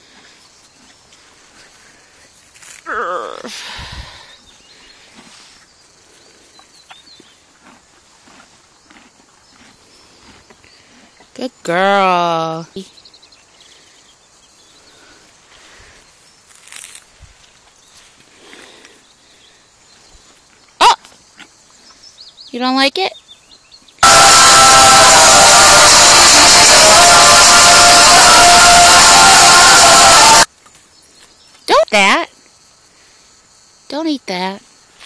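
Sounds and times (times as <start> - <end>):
horse chewing grass: 0.0 - 2.7, 4.4 - 11.4.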